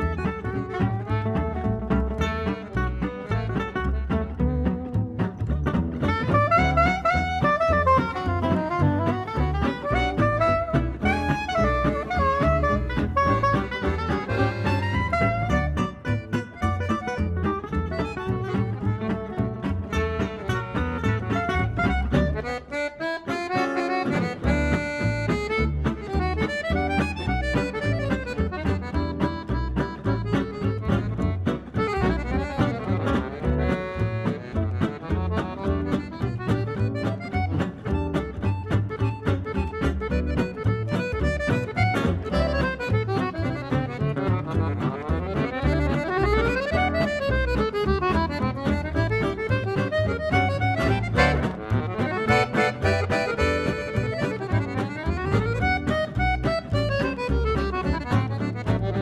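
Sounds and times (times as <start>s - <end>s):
guitars strumming: 0.0s - 59.0s
jazz band playing swing: 0.0s - 59.0s.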